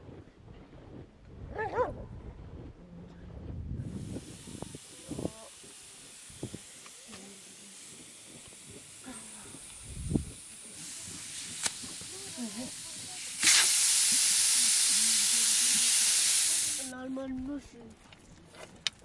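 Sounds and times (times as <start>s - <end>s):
dog barking: 1.6s - 2.0s
steam hissing from cooking pots: 3.8s - 17.0s.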